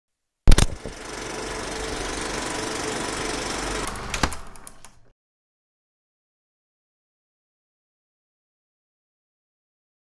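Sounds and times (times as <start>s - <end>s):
film projector clatter: 0.5s - 5.1s.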